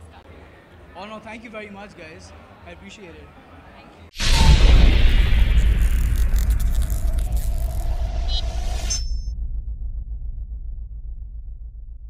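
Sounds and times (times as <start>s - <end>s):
sparkly crackles: 4.2s - 9.1s
deep rumble: 4.2s - 12.0s
whoosh: 4.2s - 12.0s.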